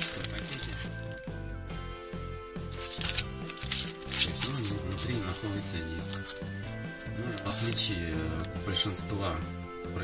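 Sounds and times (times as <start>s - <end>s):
plastic bag crinkling: 0.0s - 1.2s, 2.7s - 8.5s
background music: 0.0s - 10.0s.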